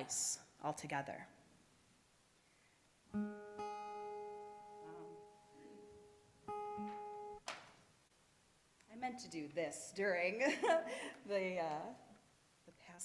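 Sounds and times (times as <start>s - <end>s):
acoustic guitar chords strummed: 3.1s - 7.4s.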